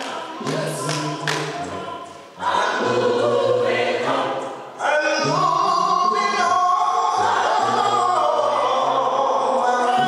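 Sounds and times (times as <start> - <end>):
vocal group singing a cappella: 0.0 - 10.0.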